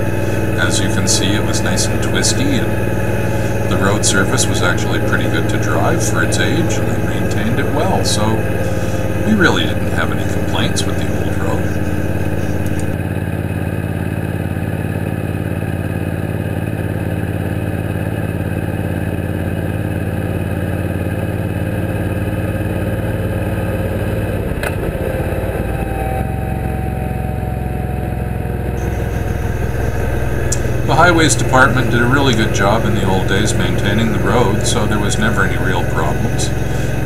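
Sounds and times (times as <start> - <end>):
motorcycle engine running: 0.0 - 37.0.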